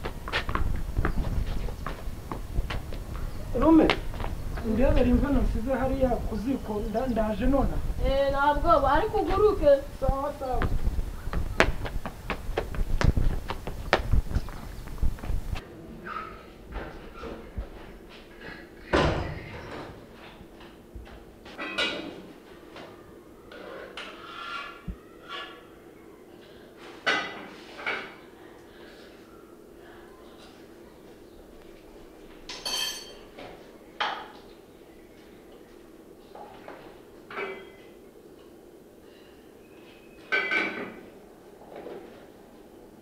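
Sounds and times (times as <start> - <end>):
metal spoon clinking on kitchenware: 32.5 - 33.3.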